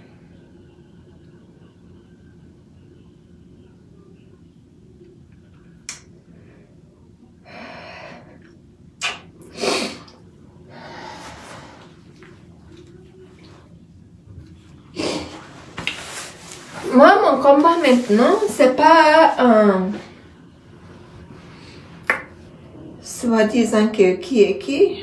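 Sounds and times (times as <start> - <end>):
rustling movement: 15.3 - 20.2.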